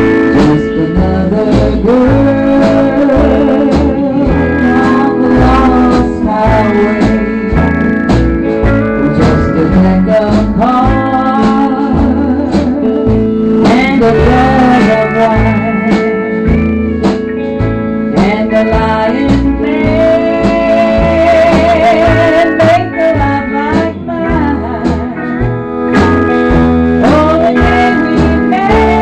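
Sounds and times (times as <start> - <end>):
country band playing: 0.0 - 29.0
pedal steel guitar lead: 0.0 - 29.0.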